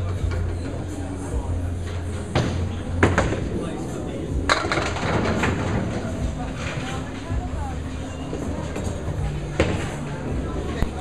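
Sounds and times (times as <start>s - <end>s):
bowling balls rolling down lanes: 0.0s - 11.0s
people talking: 0.0s - 11.0s.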